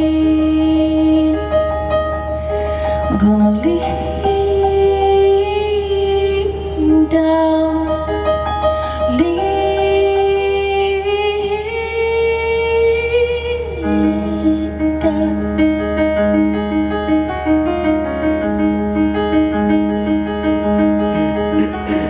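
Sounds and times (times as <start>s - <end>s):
solo piano: 0.0s - 22.0s
woman singing a long note: 3.1s - 8.0s, 9.1s - 15.7s.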